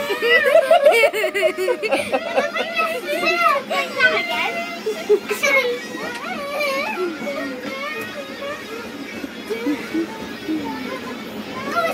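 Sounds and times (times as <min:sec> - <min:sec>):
children shouting at play: 0:00.0 - 0:11.9.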